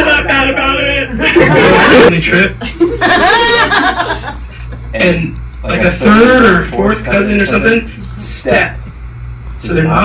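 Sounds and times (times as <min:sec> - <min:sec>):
man chuckling into microphone: 0:01.2 - 0:05.0.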